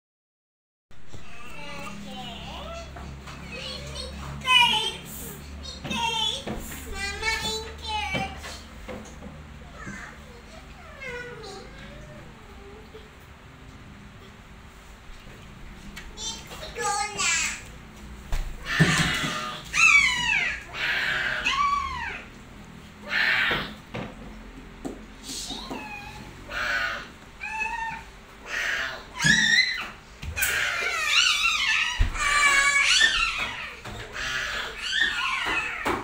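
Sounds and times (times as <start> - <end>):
child's high-pitched cry: 18.6 - 22.3, 25.4 - 36.0
drawn-out squealing cries: 18.6 - 22.4, 23.0 - 23.8, 25.6 - 36.0.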